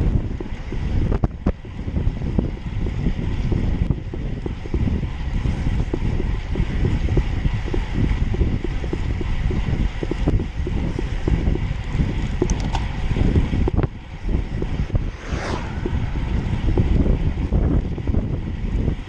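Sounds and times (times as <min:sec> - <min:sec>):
wind buffeting microphone: 0:00.0 - 0:19.0.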